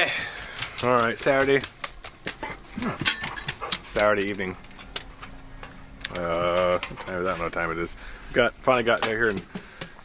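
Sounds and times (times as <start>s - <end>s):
dog breathing sounds: 0.0s - 0.9s, 2.3s - 4.0s
light clicks and knocks: 8.9s - 10.0s.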